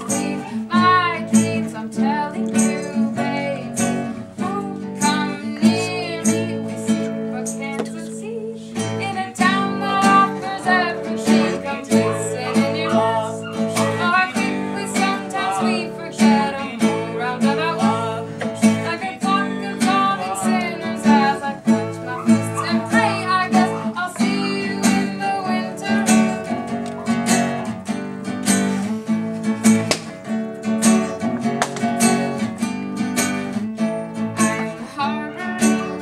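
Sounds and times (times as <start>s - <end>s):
woman singing: 0.0s - 27.6s, 33.5s - 36.0s
acoustic guitar strumming: 0.0s - 36.0s.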